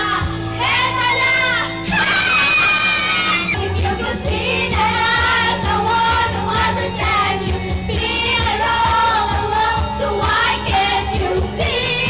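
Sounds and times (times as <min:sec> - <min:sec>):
women singing karaoke: 0:00.0 - 0:12.0
pop backing track: 0:00.1 - 0:12.0.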